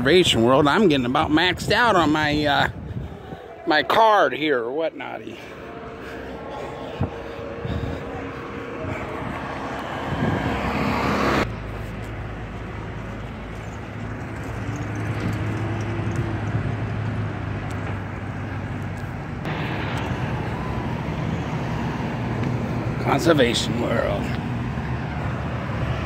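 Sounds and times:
outdoor background noise: 0:00.0 - 0:26.0
vehicle engine humming: 0:02.6 - 0:26.0.

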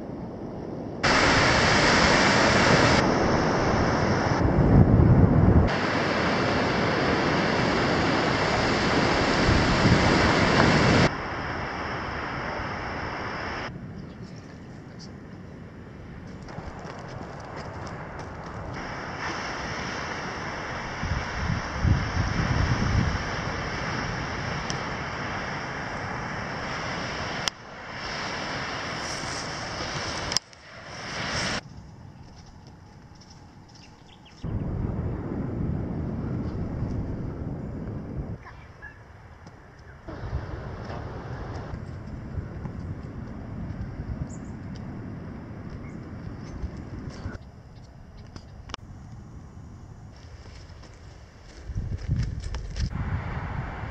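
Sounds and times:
wind on microphone: 0:00.0 - 0:32.4, 0:33.2 - 0:47.6, 0:51.5 - 0:53.9
surf: 0:01.0 - 0:13.7, 0:18.7 - 0:31.6.

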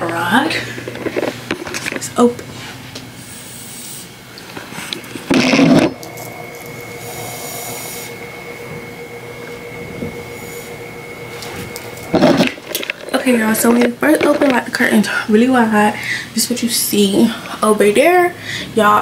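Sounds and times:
steady hum: 0:00.0 - 0:19.0
faint high whine: 0:03.2 - 0:17.4.

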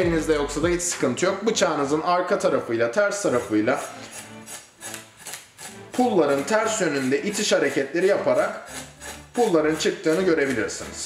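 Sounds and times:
knife scraping fish scales: 0:03.4 - 0:11.0.

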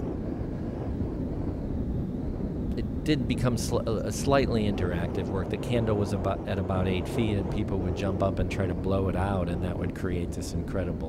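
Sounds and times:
synthetic wind rumble: 0:00.0 - 0:11.0.

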